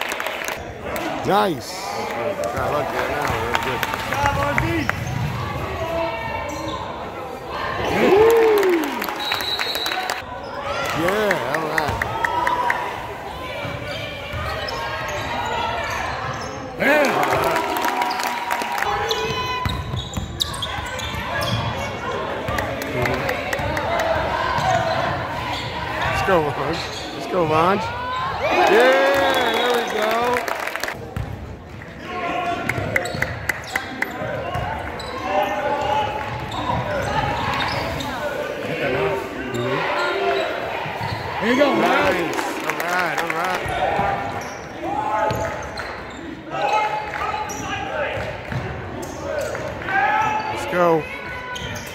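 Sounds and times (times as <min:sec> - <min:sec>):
spectators' voices: 0:00.0 - 0:19.8, 0:20.4 - 0:51.9
voices echoing in hall: 0:31.8 - 0:51.9.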